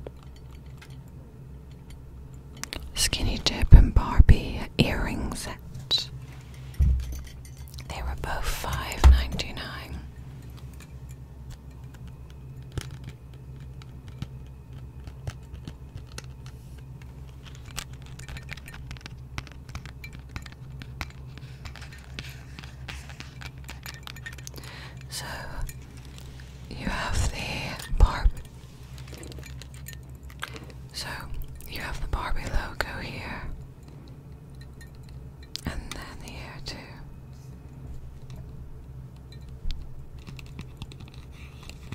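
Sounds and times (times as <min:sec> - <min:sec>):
low steady hum: 0:00.0 - 0:41.9
soft whispering: 0:02.8 - 0:06.2, 0:07.8 - 0:10.1, 0:25.0 - 0:29.3, 0:30.6 - 0:33.6, 0:35.6 - 0:37.1
earrings clicking and tapping: 0:10.4 - 0:25.1.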